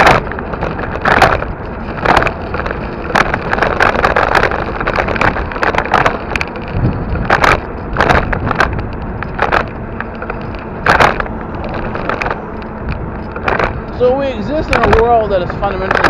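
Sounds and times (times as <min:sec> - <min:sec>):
bumps and rattles: 0:00.0 - 0:16.0
wind and road rush: 0:00.0 - 0:16.0.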